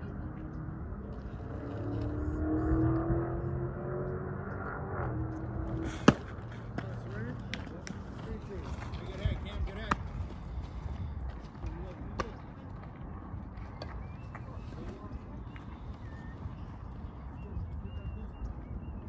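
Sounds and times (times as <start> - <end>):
distant voices: 0.0 - 19.0
outdoor ambience: 0.0 - 19.0.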